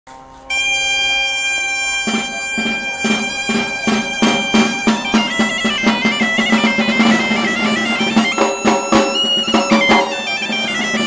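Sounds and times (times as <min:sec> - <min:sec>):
bagpipe chanter high held note: 0:00.1 - 0:11.0
bagpipe drone: 0:00.1 - 0:11.0.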